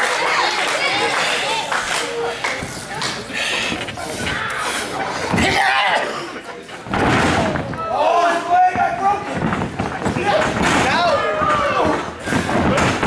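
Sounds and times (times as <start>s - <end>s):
people shouting: 10.2s - 13.0s.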